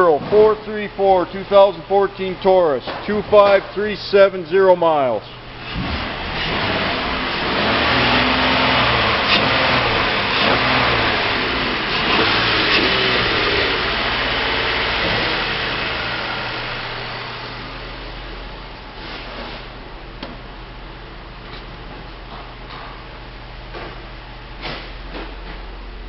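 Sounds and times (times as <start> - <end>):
car engine running: 5.4 - 25.9.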